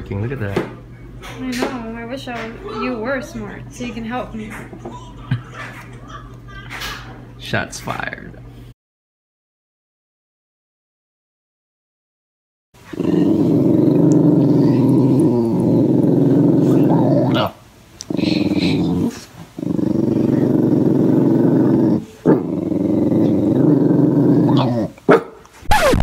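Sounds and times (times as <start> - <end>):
small dog growling: 12.8 - 25.0.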